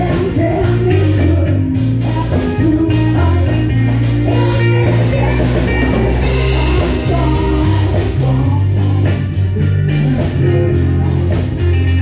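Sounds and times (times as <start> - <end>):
man singing into a microphone: 0.0 - 11.6
drum kit: 0.0 - 12.0
electric guitar: 0.0 - 12.0.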